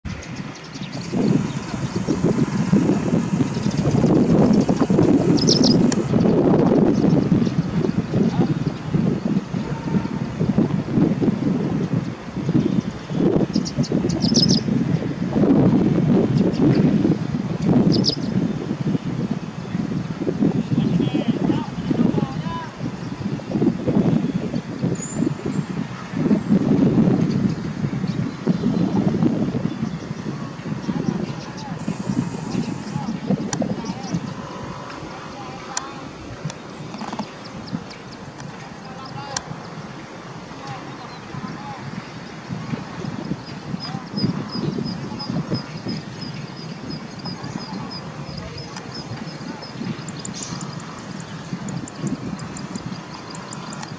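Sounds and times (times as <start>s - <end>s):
songbird chirping: 0.0s - 10.5s, 11.8s - 15.2s, 17.6s - 18.4s, 24.4s - 53.9s
wind buffeting microphone: 0.0s - 53.9s.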